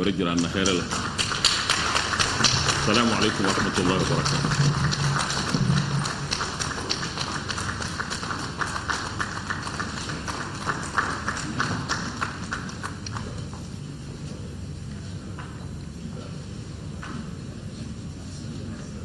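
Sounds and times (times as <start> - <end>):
audience clapping: 0.0 - 13.7.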